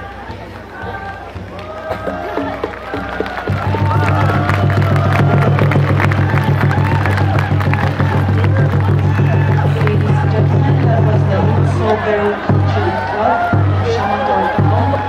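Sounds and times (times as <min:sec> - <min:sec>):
crowd chatter: 0:00.0 - 0:15.0
low group chant: 0:00.0 - 0:15.0.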